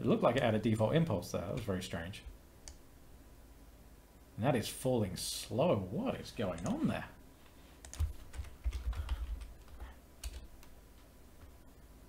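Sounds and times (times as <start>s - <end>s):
typing on computer keyboard: 7.8s - 10.7s.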